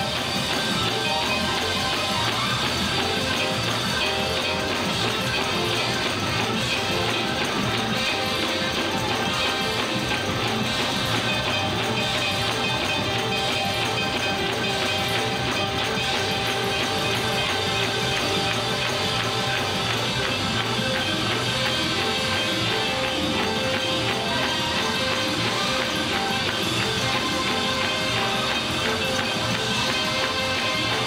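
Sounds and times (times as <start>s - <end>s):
drum kit: 0.0s - 31.0s
electric bass guitar: 0.0s - 31.0s
horns: 0.0s - 31.0s
organ: 0.0s - 31.0s.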